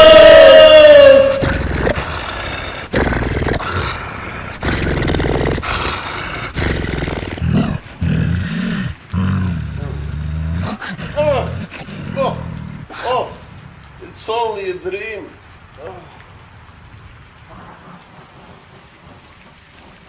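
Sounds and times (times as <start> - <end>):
deep rough growls: 0.0 - 14.0.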